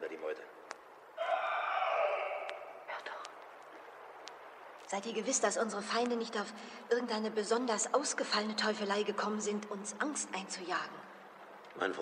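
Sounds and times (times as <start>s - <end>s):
horse screaming: 1.2s - 2.8s.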